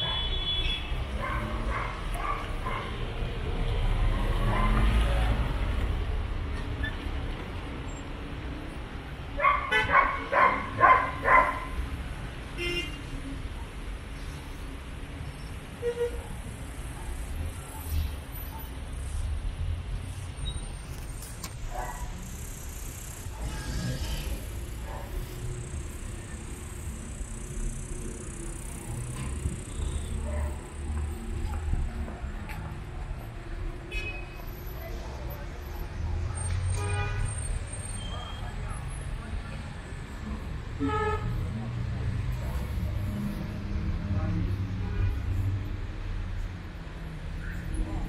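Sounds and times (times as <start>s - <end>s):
traffic rumble: 0.0s - 48.0s.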